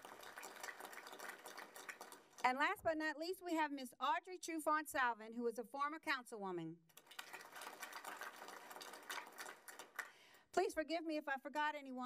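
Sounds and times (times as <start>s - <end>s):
audience applauding: 0.0s - 2.4s, 7.0s - 10.2s.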